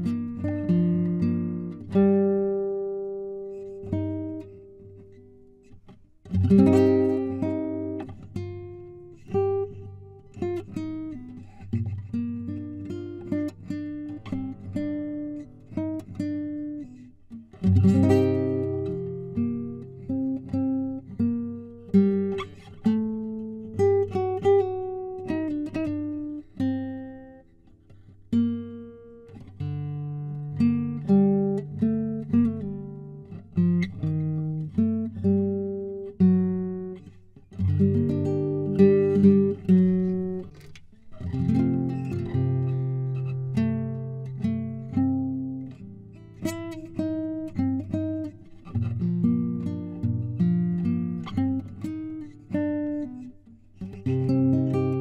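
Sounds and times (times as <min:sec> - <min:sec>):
fingerpicked classical guitar: 0:00.0 - 0:55.0.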